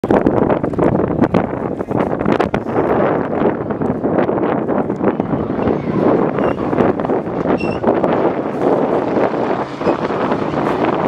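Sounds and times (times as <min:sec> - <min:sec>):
wind buffeting microphone: 0:00.0 - 0:11.0
car engines at high revs: 0:05.6 - 0:11.0.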